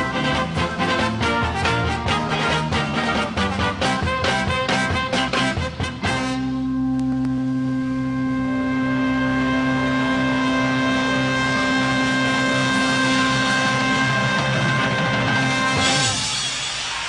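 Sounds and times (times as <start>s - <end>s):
rock band sustained chord: 0.0s - 16.8s.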